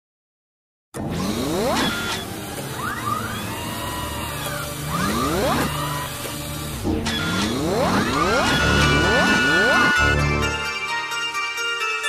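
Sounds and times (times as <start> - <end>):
rising sweeping tones: 2.8 - 10.6.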